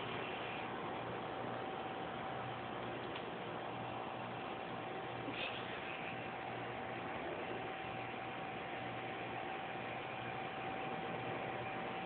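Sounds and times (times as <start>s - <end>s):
faint high hum: 0.0s - 12.0s.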